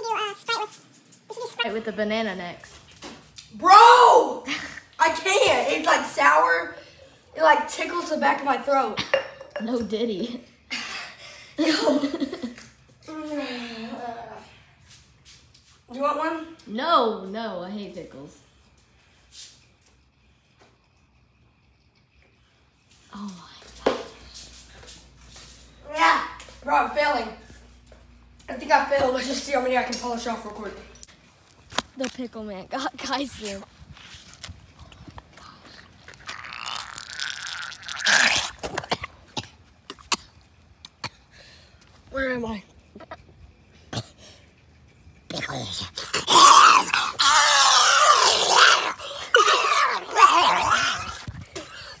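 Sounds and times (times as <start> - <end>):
person straining and exhaling: 35.0 - 41.6, 45.9 - 52.0
boy retching with groans: 35.2 - 41.4, 42.8 - 44.6, 45.3 - 52.0.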